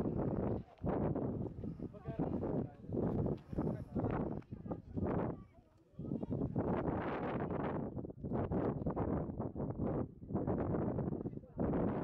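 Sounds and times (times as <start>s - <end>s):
wind buffeting microphone: 0.0s - 5.4s.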